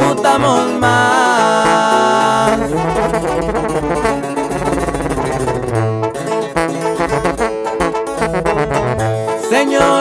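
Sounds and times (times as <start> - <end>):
band playing instrumental music: 0.0 - 10.0.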